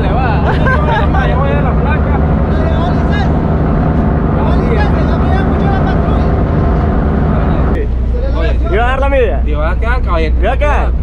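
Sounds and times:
ferry engine drone: 0:00.0 - 0:11.0
people's voices: 0:00.0 - 0:11.0.

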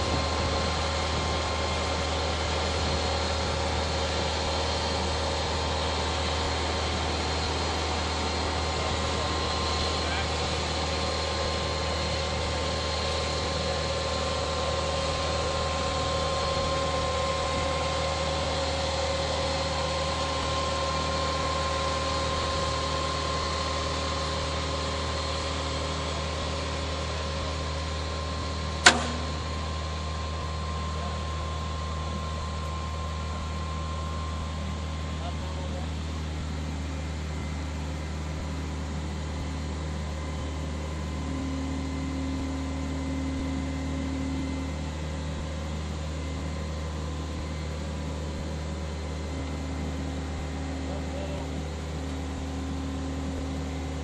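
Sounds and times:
excavator diesel engine running: 0:00.0 - 0:54.0
sharp knock: 0:28.8 - 0:29.4.

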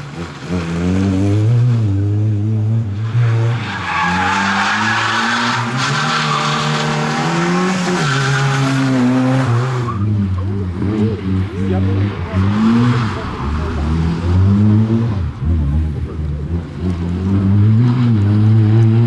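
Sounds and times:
rally car engine revving: 0:00.0 - 0:19.0.

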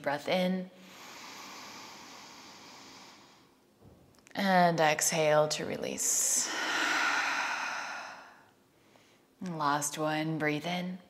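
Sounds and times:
woman inhaling through the nose: 0:00.8 - 0:03.6.

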